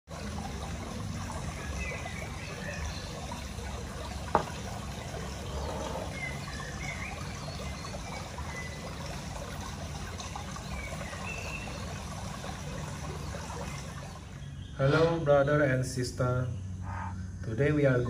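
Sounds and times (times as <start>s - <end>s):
water trickling: 0.1s - 18.0s
metal censer knocking on wood: 4.3s - 4.6s.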